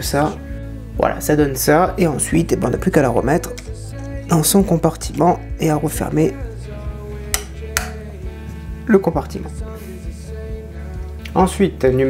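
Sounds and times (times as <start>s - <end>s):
background music: 0.0s - 12.0s.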